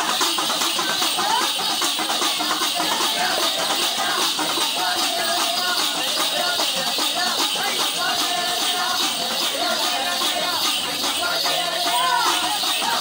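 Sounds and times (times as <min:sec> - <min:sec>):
metallic jingling: 0:00.0 - 0:13.0
rhythmic percussion: 0:00.0 - 0:13.0
voices singing and calling: 0:00.0 - 0:13.0.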